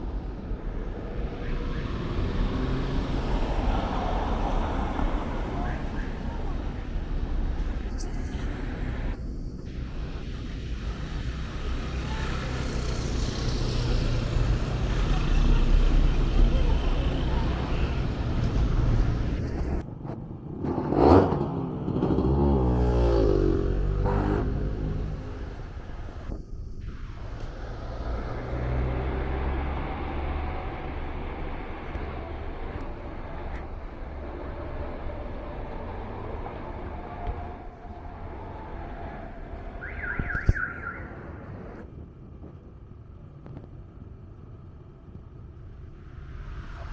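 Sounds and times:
cars passing: 0.0 - 42.0
loud vehicle passing: 27.3 - 39.6.

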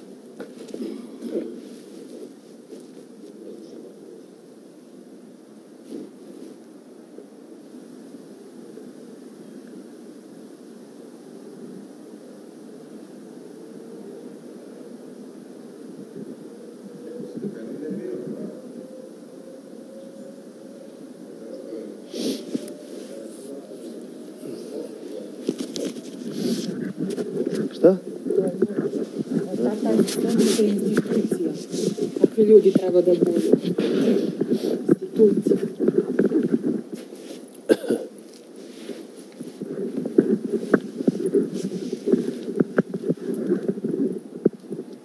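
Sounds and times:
muffled voices talking: 0.6 - 4.3, 16.8 - 19.0, 21.2 - 37.8
low outdoor rumble: 21.2 - 45.0.

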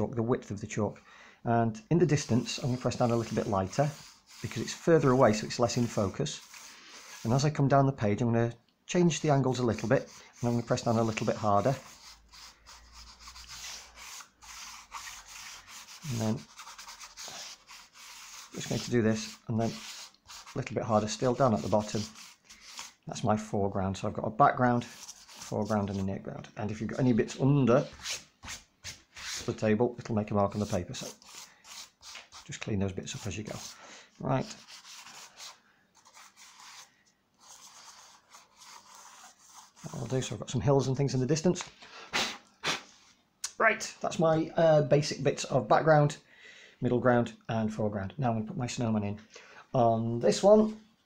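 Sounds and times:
chalk rubbing on paper: 2.1 - 7.6, 9.5 - 23.0, 24.8 - 26.1, 27.8 - 29.6, 30.4 - 33.8, 34.4 - 40.4.

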